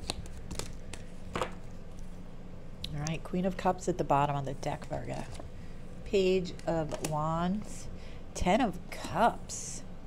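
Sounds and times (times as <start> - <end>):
cards shuffling: 0.0 - 2.1
faint room hum: 0.0 - 10.0.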